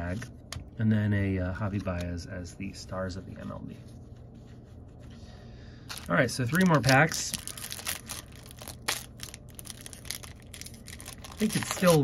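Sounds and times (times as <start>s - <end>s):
card pack wrapper crinkling: 5.9s - 12.0s.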